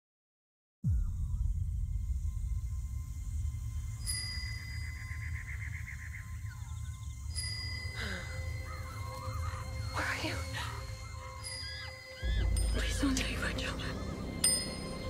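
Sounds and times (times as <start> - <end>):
low drone: 0.9 - 15.0
high ringing tones: 3.8 - 5.6, 7.2 - 9.0
warbling bird calls: 4.0 - 15.0.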